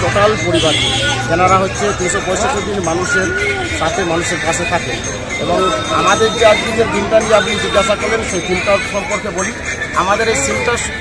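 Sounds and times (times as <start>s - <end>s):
man speaking into a microphone: 0.0s - 11.0s.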